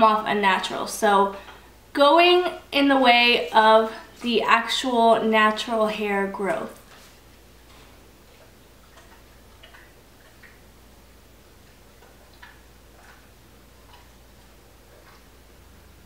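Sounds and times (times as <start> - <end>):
quiet room hum: 0.0 - 16.0.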